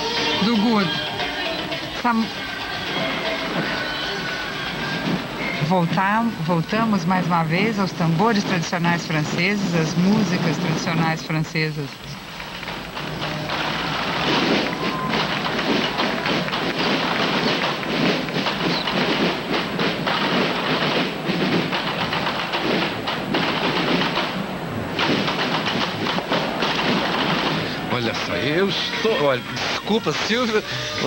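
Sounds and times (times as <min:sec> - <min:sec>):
crowd noise: 0:00.0 - 0:31.0
massed drums playing: 0:12.8 - 0:24.3.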